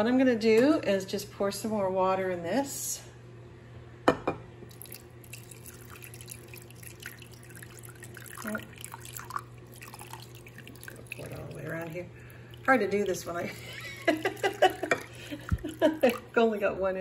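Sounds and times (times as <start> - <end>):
water pouring and dripping: 4.7 - 16.4.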